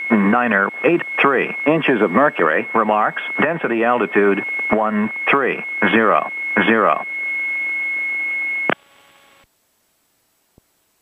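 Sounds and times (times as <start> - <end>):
automated weather broadcast voice: 0.0 - 7.1
high-pitched radio tone: 0.0 - 8.8
faint hum: 0.0 - 11.0.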